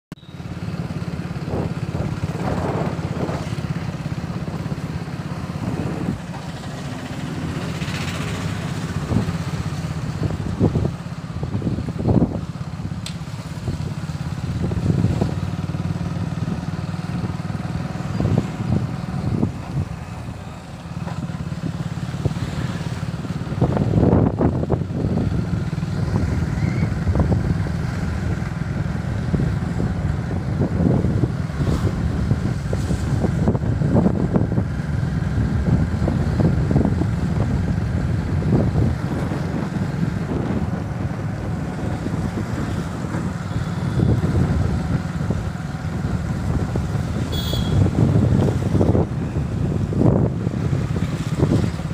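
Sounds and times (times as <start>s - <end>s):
vehicle engine running: 0.1s - 51.9s
wind buffeting microphone: 1.2s - 51.9s.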